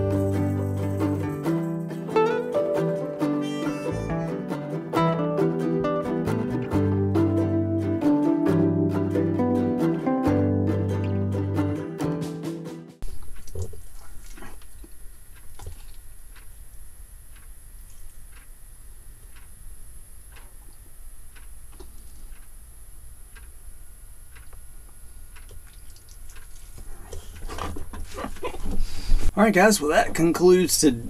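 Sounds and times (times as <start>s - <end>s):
steady low hum: 13.0s - 31.0s.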